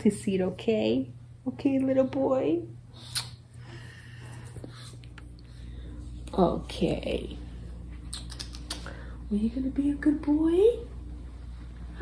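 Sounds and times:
low steady hum: 0.0s - 12.0s
kiss lip smack: 3.0s - 3.4s, 8.1s - 9.0s.

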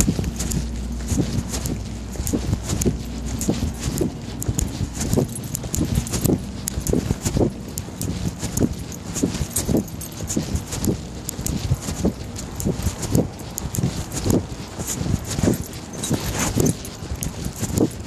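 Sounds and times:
low rumble: 0.0s - 15.9s.

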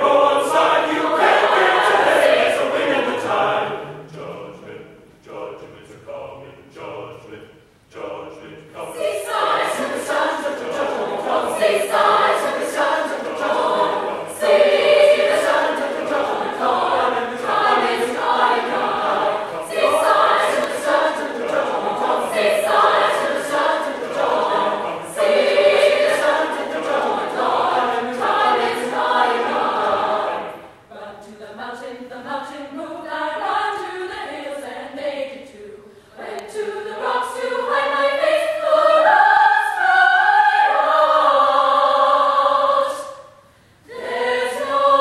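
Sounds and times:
choir singing in harmony: 0.0s - 45.0s.

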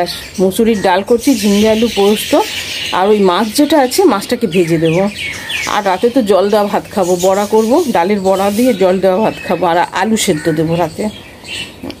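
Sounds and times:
woman talking: 0.0s - 11.2s.

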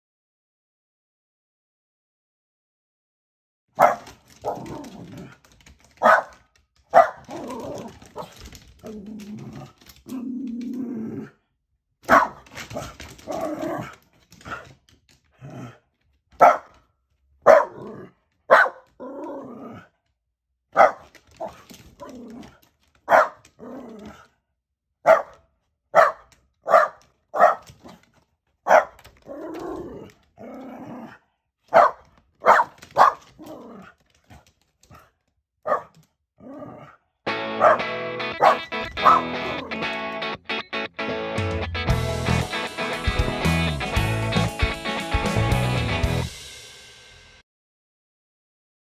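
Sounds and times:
dog barking: 3.8s - 5.3s, 6.0s - 8.4s, 12.0s - 14.7s, 16.4s - 16.8s, 17.4s - 18.9s, 20.7s - 22.2s, 23.0s - 24.2s, 25.0s - 28.0s, 28.6s - 30.0s, 31.7s - 33.9s, 34.9s - 36.0s, 37.5s - 39.7s.

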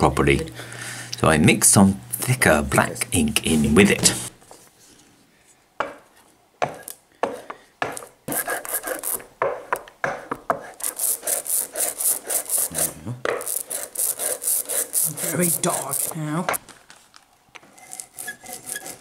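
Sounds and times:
rubber roller rolling ink on glass: 8.3s - 16.6s, 17.6s - 19.0s.

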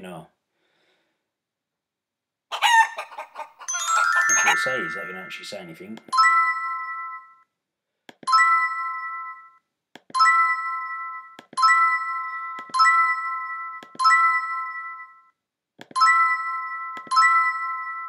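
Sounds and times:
electronic game chime: 3.7s - 7.4s, 10.2s - 15.3s, 16.0s - 18.0s.

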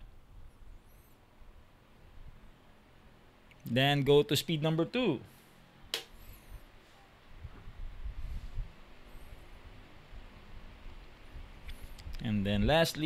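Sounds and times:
electric fan airflow rumble: 0.0s - 13.0s.

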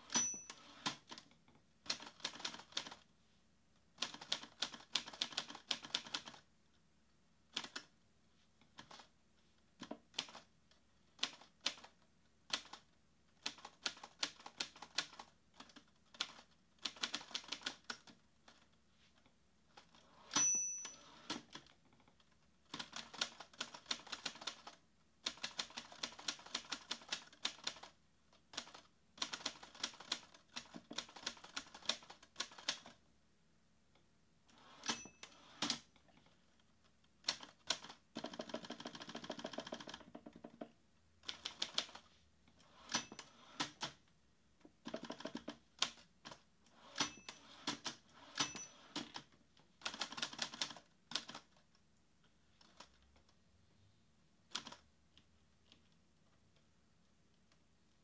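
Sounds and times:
typewriter bell ding: 0.0s - 0.9s, 20.2s - 21.3s, 34.7s - 35.6s, 42.8s - 43.4s, 46.9s - 49.0s
manual typewriter typing: 1.8s - 3.0s, 4.0s - 6.4s, 13.4s - 18.6s, 22.7s - 33.0s, 37.2s - 40.3s, 44.9s - 51.6s.

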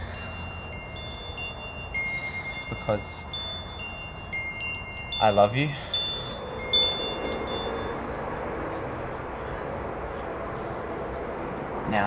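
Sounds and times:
wind chime tinkling: 0.0s - 11.0s.

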